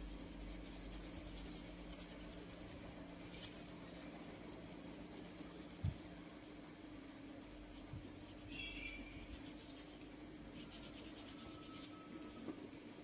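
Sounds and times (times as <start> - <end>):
scratching of colouring on paper: 0.0 - 12.5.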